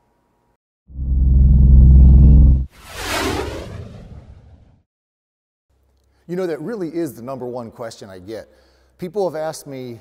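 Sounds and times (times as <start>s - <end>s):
propeller plane engine drone: 0.9s - 4.7s
whoosh: 0.9s - 4.9s.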